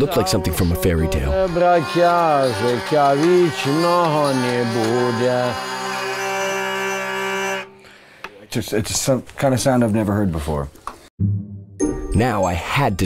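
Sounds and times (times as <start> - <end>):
man singing: 0.0 - 1.6
hurdy-gurdy drone: 0.0 - 7.9.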